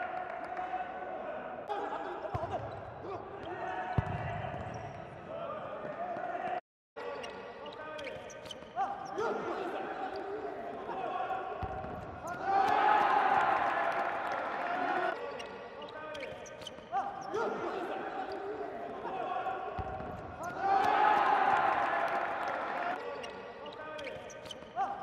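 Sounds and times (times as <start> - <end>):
players and crowd shouting: 0.0 - 7.2, 8.8 - 16.3, 16.9 - 25.0.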